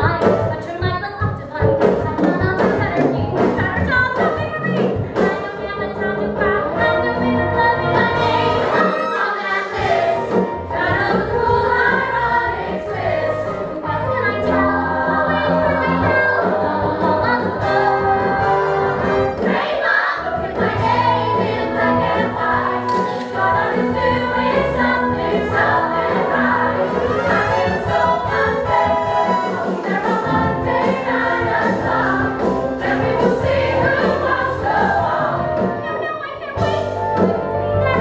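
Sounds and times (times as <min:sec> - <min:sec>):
woman singing lead: 0:00.0 - 0:09.8, 0:13.5 - 0:32.1
chorus of voices: 0:06.4 - 0:36.0
pit band playing: 0:06.4 - 0:36.0.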